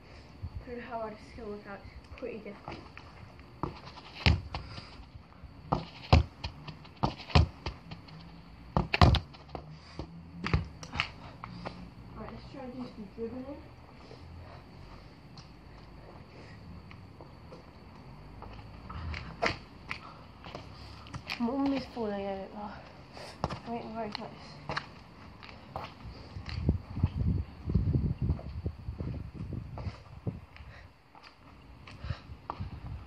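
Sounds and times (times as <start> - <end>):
football being kicked: 5.7 - 7.9, 8.7 - 11.0, 23.4 - 23.7.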